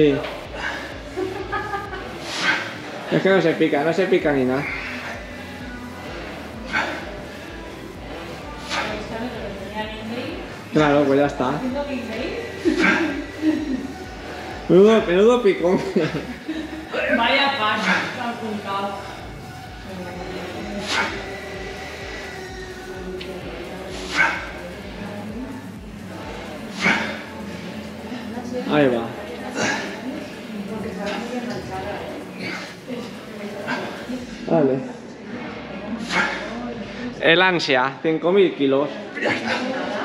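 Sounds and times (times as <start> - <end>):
steady low hum: 0.0 - 37.2.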